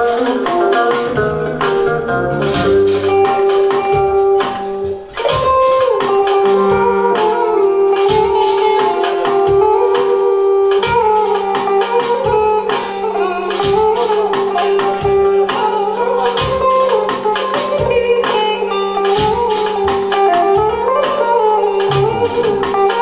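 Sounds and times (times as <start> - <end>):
drums and bass rhythm: 0.0 - 23.0
electric guitar: 0.0 - 23.0
keyboard melody: 0.0 - 23.0.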